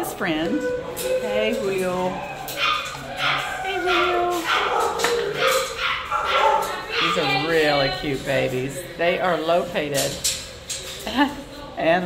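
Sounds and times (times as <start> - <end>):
dogs yipping and whining: 0.2 - 7.6.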